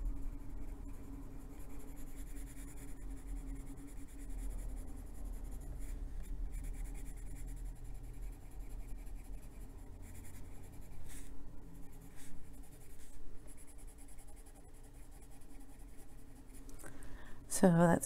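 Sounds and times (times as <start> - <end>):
pencil scratching on paper: 0.0 - 16.6.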